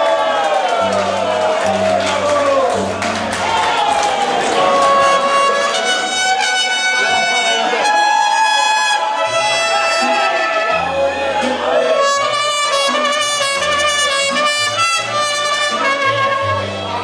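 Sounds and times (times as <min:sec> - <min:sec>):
deep bass notes: 0:00.8 - 0:17.0
violins and trumpets: 0:02.7 - 0:17.0.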